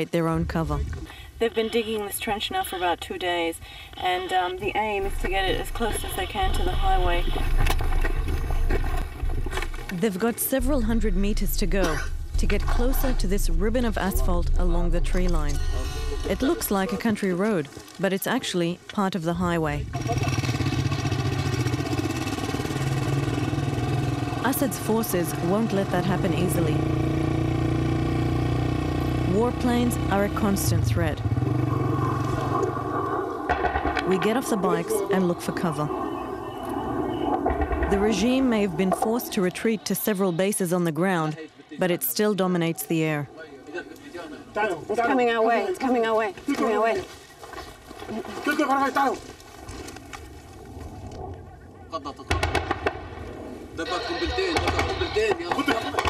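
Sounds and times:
faint low rumble: 4.6 - 17.0
low rumble on microphone: 10.6 - 16.5
motorcycle engine running: 19.8 - 34.7
jet engine drone overhead: 31.4 - 37.9.

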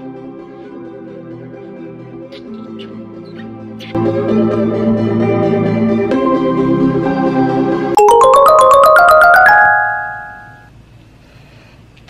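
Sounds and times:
bell-like mallet notes: 8.0 - 10.6.

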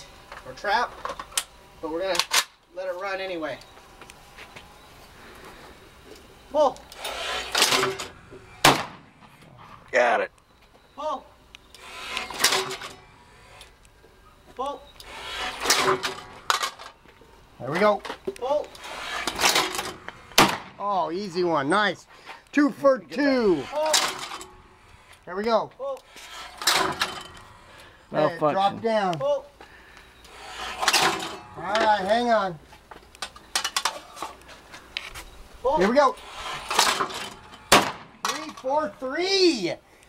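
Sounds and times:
clay thrower launching: 6.9 - 9.7, 11.8 - 13.7, 15.0 - 16.9, 18.8 - 20.8, 23.2 - 24.6, 26.1 - 27.7, 30.3 - 31.9, 36.1 - 38.6
shotgun bang: 8.6 - 9.1, 20.4 - 20.8, 37.7 - 38.2.

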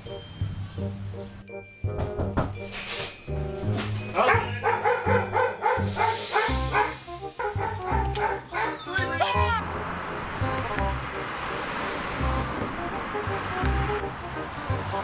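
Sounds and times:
dog barking: 4.2 - 9.0
music with bass beat: 9.1 - 11.3.

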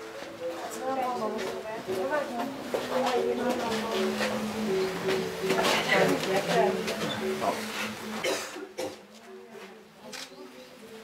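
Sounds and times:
people talking: 0.2 - 11.0
person coughing: 8.2 - 9.0.

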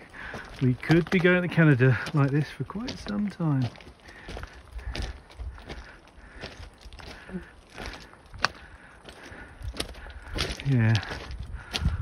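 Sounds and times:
footsteps crunching on loose rock: 0.0 - 12.0.

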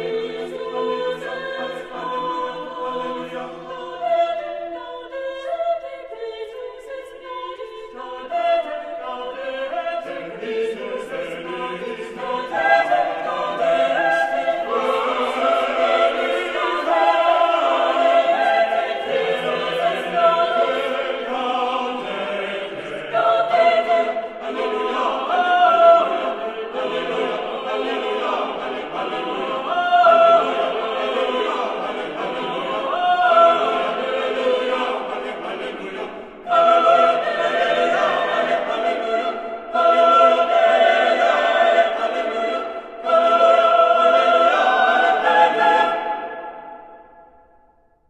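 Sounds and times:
chamber choir singing chords: 0.0 - 47.8.

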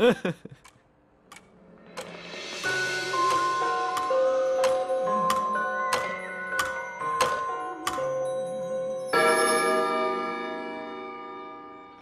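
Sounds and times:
music: 1.3 - 12.0.

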